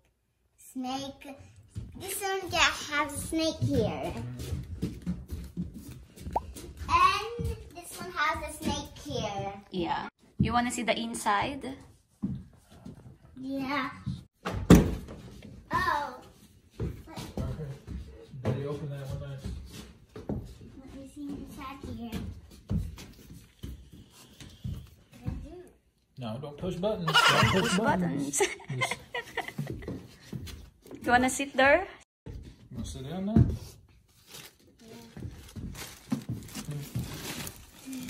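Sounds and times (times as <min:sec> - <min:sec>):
child and adult speech: 0:00.6 - 0:05.5, 0:06.6 - 0:11.8, 0:12.7 - 0:14.3, 0:15.5 - 0:23.8, 0:24.4 - 0:29.4
handling knocks and rustles: 0:32.3 - 0:38.0.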